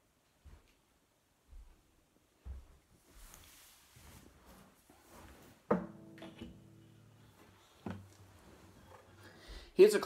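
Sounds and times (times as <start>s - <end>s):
acoustic guitar being handled: 4.5s - 9.6s
knock on guitar body: 5.7s - 6.7s
guitar strings ringing: 5.7s - 9.5s.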